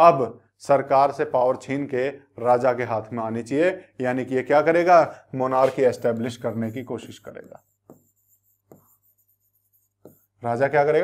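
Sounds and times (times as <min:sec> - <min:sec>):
pen scratching on board: 0:05.6 - 0:10.4.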